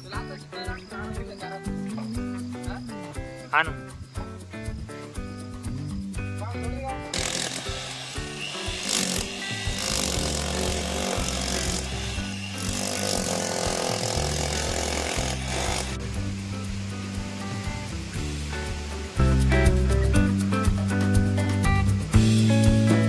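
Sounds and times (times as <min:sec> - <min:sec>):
background music: 0:00.0 - 0:23.0
drill boring into masonry: 0:07.1 - 0:16.1.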